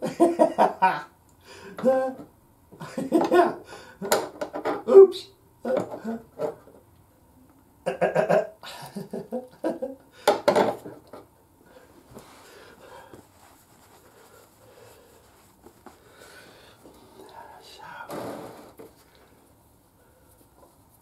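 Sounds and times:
man's wordless vocal sounds: 0:01.7 - 0:02.3.

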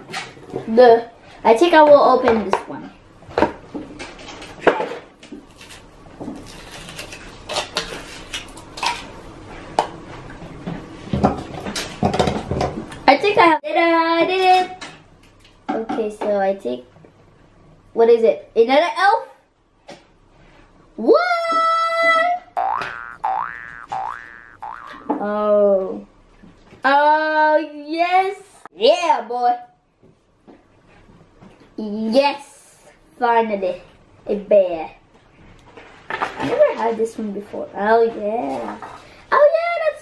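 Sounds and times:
foil crinkling: 0:05.5 - 0:08.6
cartoon boing sounds: 0:22.6 - 0:25.3.

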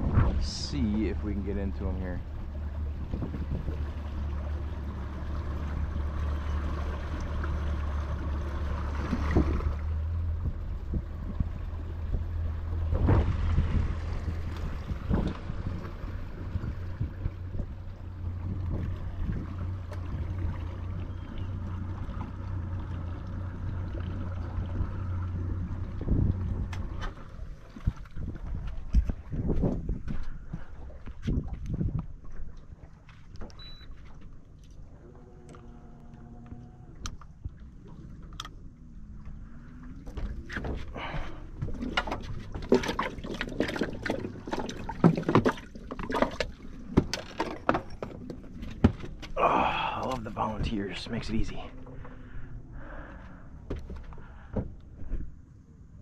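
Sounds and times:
boat motor running: 0:00.0 - 0:56.0
water noise: 0:00.0 - 0:56.0
wind: 0:00.0 - 0:56.0.

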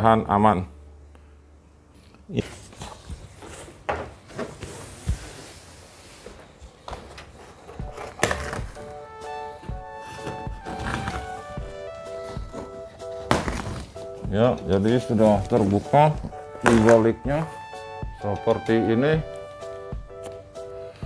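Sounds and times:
cardboard tearing: 0:07.2 - 0:09.0, 0:10.0 - 0:14.1
background music with held notes: 0:07.6 - 0:21.0
knocks and thuds on box: 0:12.4 - 0:14.0, 0:16.6 - 0:17.4.

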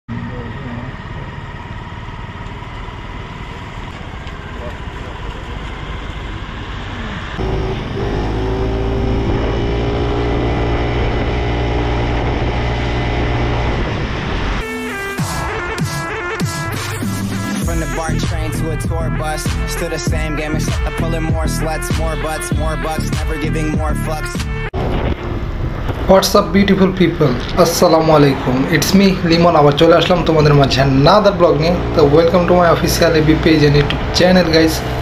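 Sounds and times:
motor scooter engine running: 0:00.1 - 0:13.9
wind noise on microphone: 0:09.0 - 0:14.6, 0:24.8 - 0:26.5
loud music with a beat: 0:14.6 - 0:24.7.

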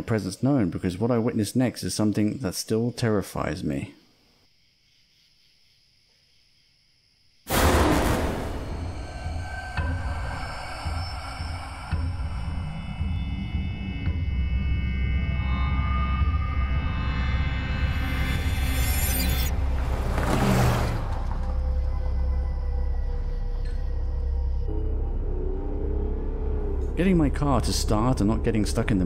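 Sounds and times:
loud burst of noise: 0:07.5 - 0:09.9
low rumbling drone: 0:07.5 - 0:29.0
suspenseful horror score: 0:07.5 - 0:29.0.

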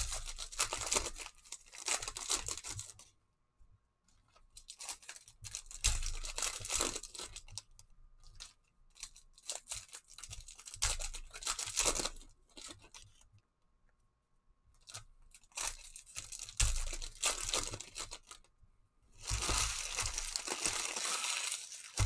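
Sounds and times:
foil wrapper tearing and crinkling: 0:00.0 - 0:03.0, 0:04.5 - 0:13.2, 0:14.8 - 0:18.5, 0:19.2 - 0:22.0.

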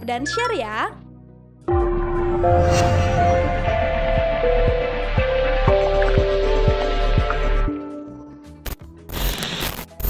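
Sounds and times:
sharp hit: 0:01.7 - 0:06.7.

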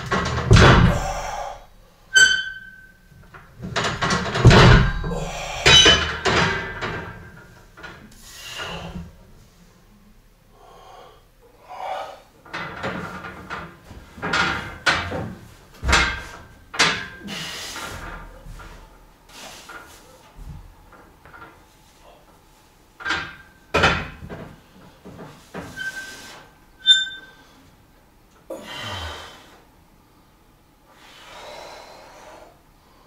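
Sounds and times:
metal clanks and knocks: 0:00.0 - 0:01.4, 0:02.1 - 0:08.1, 0:12.4 - 0:18.9, 0:23.0 - 0:25.9.

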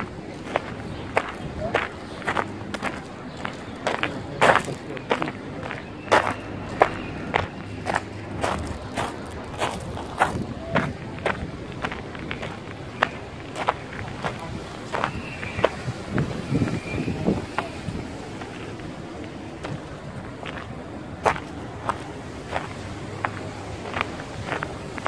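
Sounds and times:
footsteps on gravel: 0:00.0 - 0:17.8, 0:18.4 - 0:25.0.

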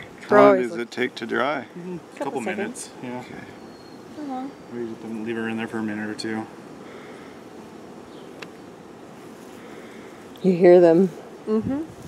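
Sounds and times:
bees buzzing: 0:00.0 - 0:11.5.

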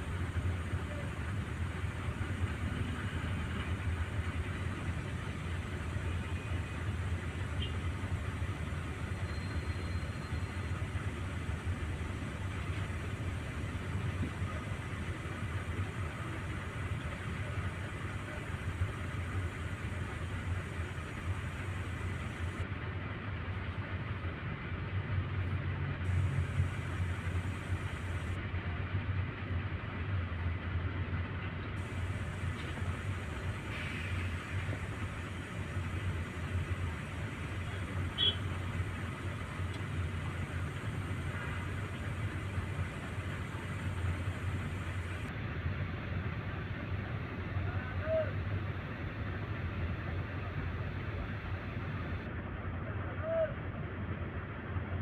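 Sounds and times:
outdoor hiss: 0:00.0 - 0:22.6, 0:26.1 - 0:28.4, 0:31.8 - 0:45.3
vehicle engines idling: 0:00.0 - 0:52.7.

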